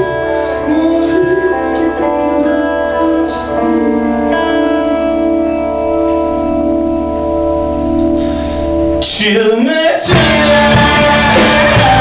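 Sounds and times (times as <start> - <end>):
bass guitar: 0.0 - 12.0
electric guitar chords: 0.0 - 12.0.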